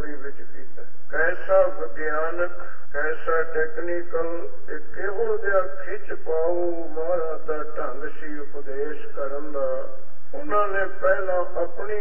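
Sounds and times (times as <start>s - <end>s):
man chanting with held notes: 0.0s - 12.0s.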